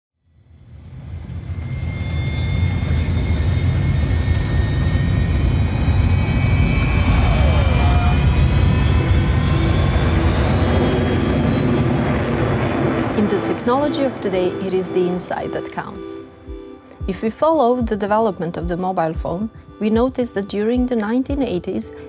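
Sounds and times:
jet engine roar with high whines: 0.3s - 17.1s.

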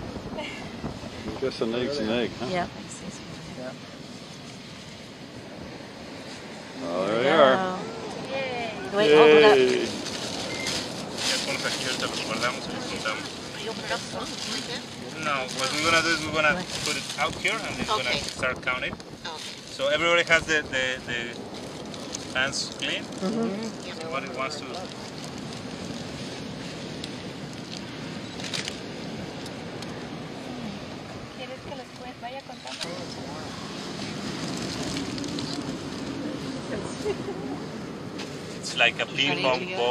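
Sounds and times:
steady rushing noise: 0.0s - 39.9s
surf: 0.0s - 39.9s
wind: 0.0s - 39.9s
faint voices: 6.6s - 21.4s
short rustle: 9.6s - 18.4s.

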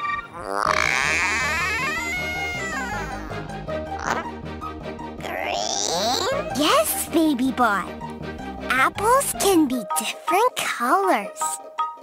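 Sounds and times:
children's music with bass beat: 5.0s - 12.0s.

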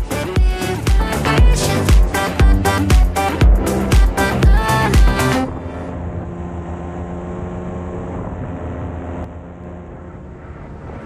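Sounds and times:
two-stroke engine droning: 0.0s - 11.0s.

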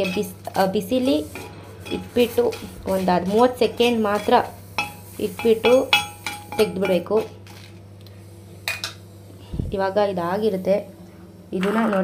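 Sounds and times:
knife scraping a griddle: 0.0s - 5.2s
low steady hum: 0.0s - 12.0s.

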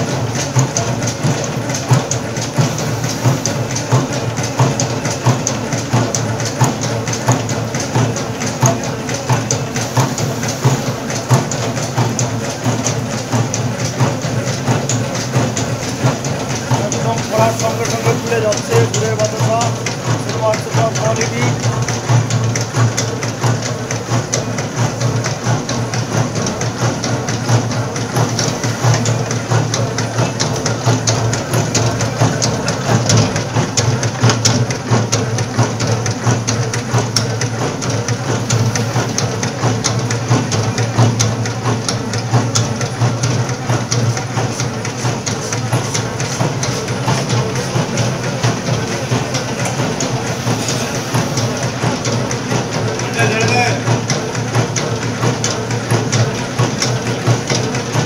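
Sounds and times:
machine mechanism clattering: 0.0s - 58.0s
steady low machine hum: 0.0s - 58.0s.

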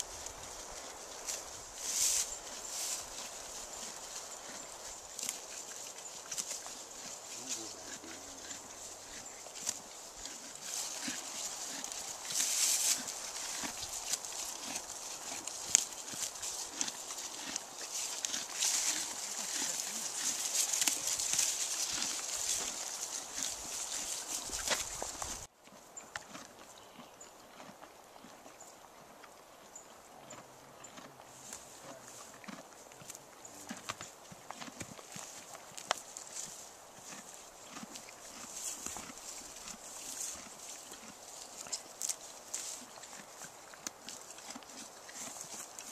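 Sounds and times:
horse chewing grass: 0.0s - 45.9s.

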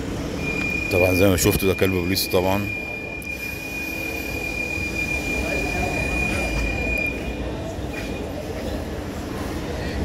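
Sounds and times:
high-pitched whine: 0.0s - 8.3s.

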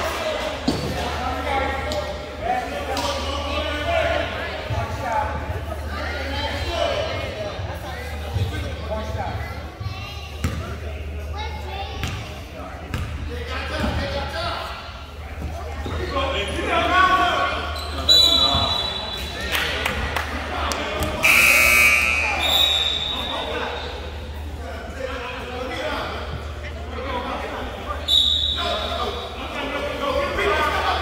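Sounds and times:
voices of players and spectators: 0.0s - 31.0s
loud buzzer tone: 21.2s - 22.4s
short high whistle-like tone: 21.2s - 23.4s.

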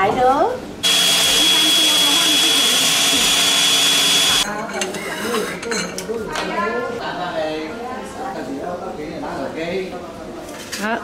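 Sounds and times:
grinder whining: 0.8s - 4.5s.

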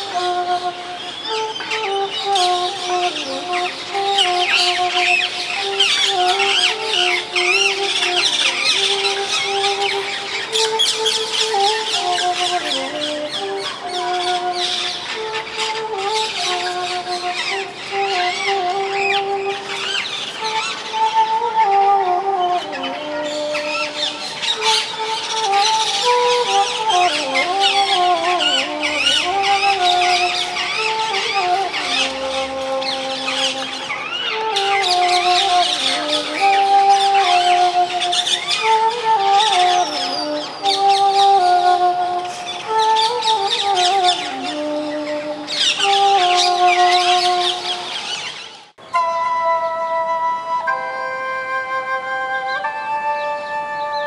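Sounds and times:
many birds chirping: 0.0s - 48.9s
bamboo flute slow melody: 0.0s - 54.0s.

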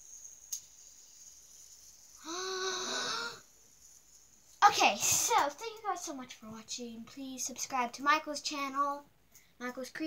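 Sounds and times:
child making breathy sound: 2.2s - 3.4s.

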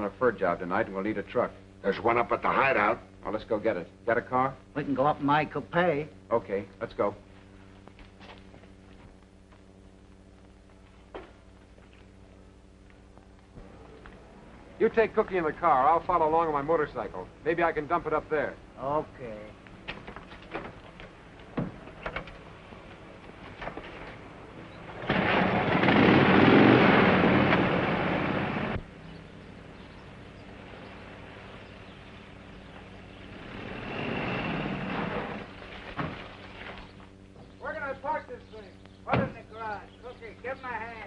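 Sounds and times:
birds chirping: 24.3s - 25.0s, 28.8s - 35.6s, 36.4s - 41.0s
car and motorcycle engines revving: 25.0s - 28.8s, 33.1s - 35.5s.

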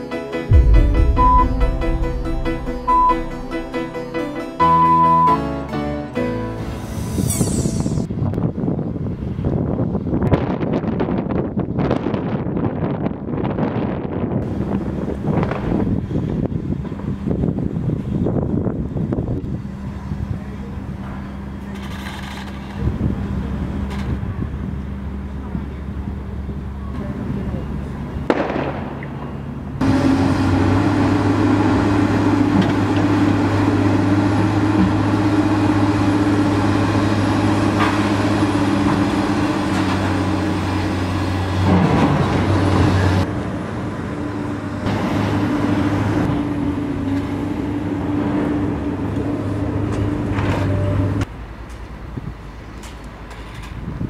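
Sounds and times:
heavy machinery engine humming: 0.4s - 8.1s, 29.2s - 52.8s.

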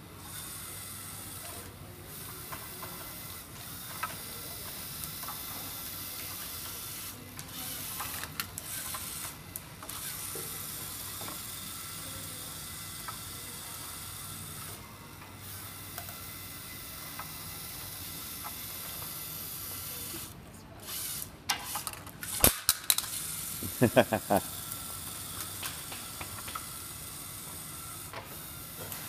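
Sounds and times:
robot motor gear whir: 2.2s - 22.5s.

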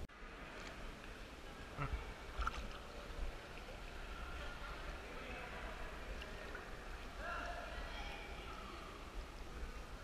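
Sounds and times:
water sloshing and lapping: 0.5s - 10.0s
water splash: 2.2s - 3.8s.

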